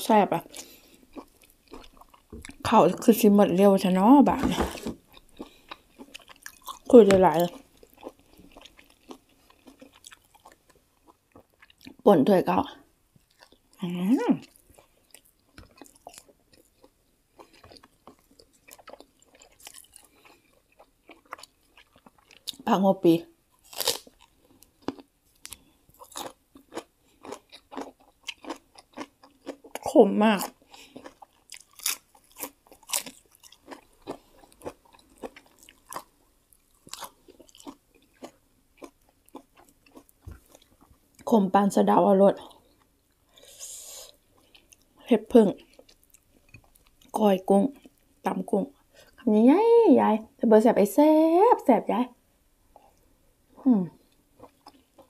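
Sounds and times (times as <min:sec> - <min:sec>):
person chewing crunchy food: 0:00.3 - 0:02.7, 0:04.4 - 0:12.0, 0:13.2 - 0:22.7, 0:23.5 - 0:41.3, 0:42.4 - 0:45.0, 0:45.6 - 0:47.2, 0:54.0 - 0:55.0
person speaking: 0:02.7 - 0:05.0, 0:06.9 - 0:07.6.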